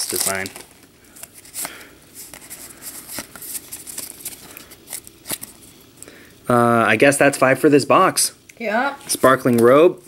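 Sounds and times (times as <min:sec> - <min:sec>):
trading cards clicking and rustling: 0:00.0 - 0:05.6.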